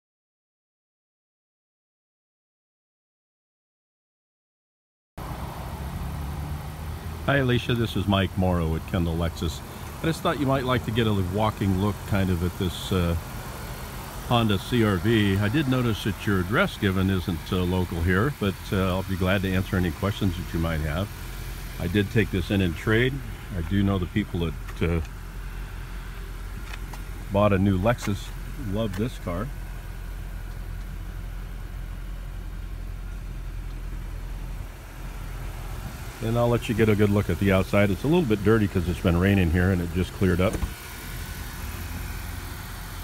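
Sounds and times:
car engine idling: 5.2 - 43.0.

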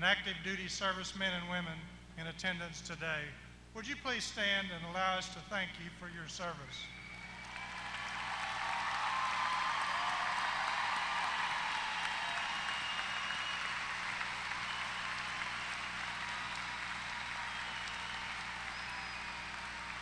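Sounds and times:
large audience applauding: 7.2 - 20.0.

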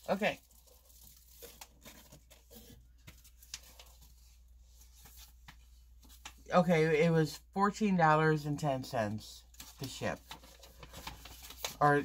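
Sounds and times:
plastic packaging rustling: 0.0 - 6.3, 9.5 - 12.0.

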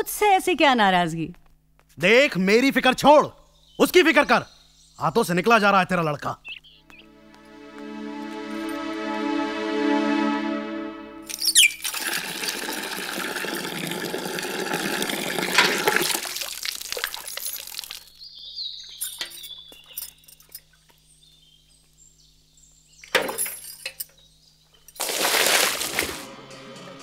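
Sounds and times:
bucket of water poured out: 11.8 - 18.1, 25.0 - 26.3.

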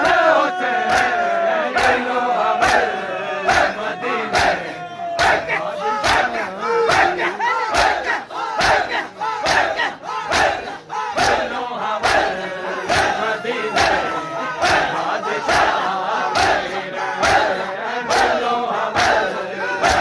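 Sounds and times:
crowd slapping chests in unison: 0.0 - 20.0
men chanting and wailing: 0.0 - 20.0.

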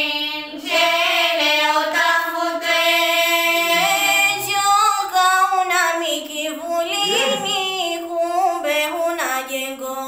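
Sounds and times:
girl singing: 3.4 - 10.0.

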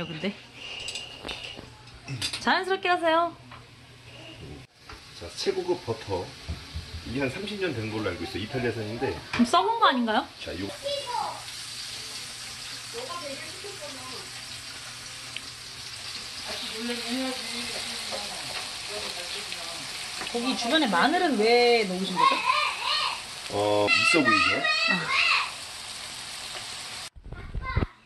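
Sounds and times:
steaks sizzling in a frying pan: 4.8 - 27.1.

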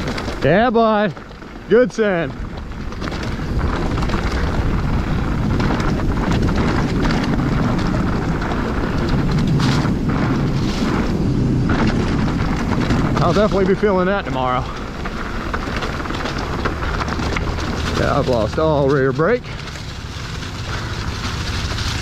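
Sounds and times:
bike tyres rumbling on dirt: 0.0 - 22.0
wind buffeting microphone: 0.0 - 22.0.

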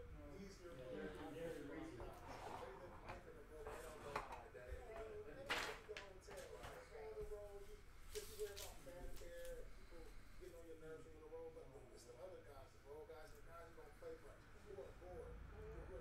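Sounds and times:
faint tv voices: 0.0 - 16.0.

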